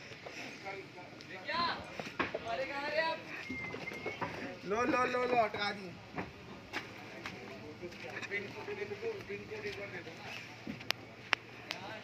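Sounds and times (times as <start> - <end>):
people talking in background: 0.0 - 12.0
thin whistle-like tone: 3.3 - 4.5.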